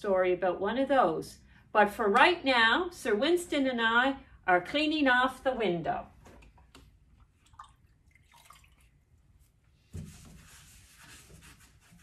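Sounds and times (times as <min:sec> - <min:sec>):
small water drips and clicks: 0:06.4 - 0:09.2.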